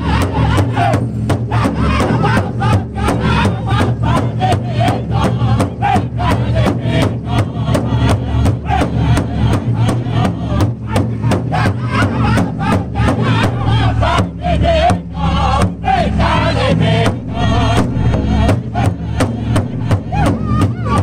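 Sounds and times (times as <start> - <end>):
large bass drum beating: 0.0 - 21.0
men singing in high voices: 0.0 - 21.0.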